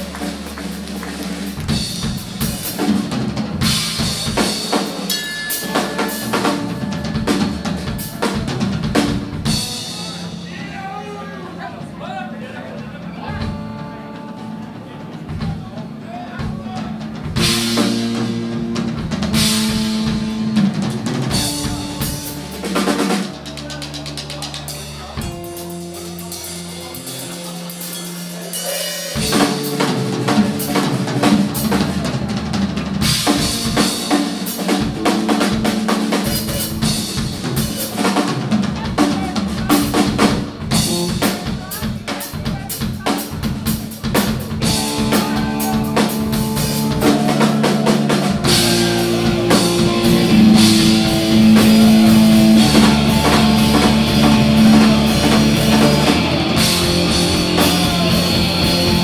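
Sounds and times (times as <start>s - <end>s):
blues-rock band playing: 0.0s - 59.0s
drum kit: 0.0s - 59.0s.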